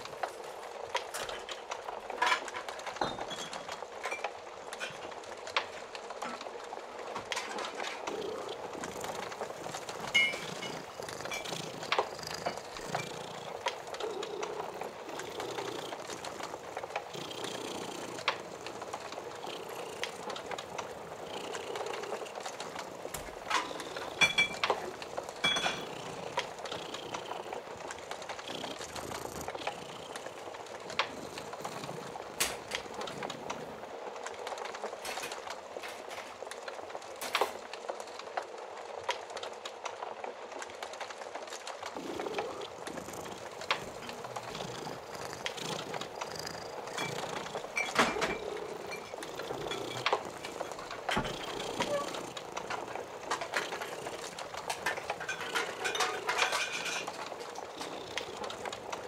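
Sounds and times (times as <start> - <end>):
cat purring: 0.0 - 59.0
fire crackling and popping: 0.0 - 59.0.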